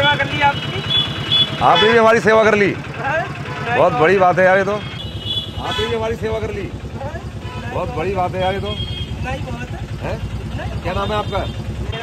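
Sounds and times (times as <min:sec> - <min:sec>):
vehicle engine idling: 0:00.0 - 0:12.0
voices talking: 0:00.0 - 0:12.0.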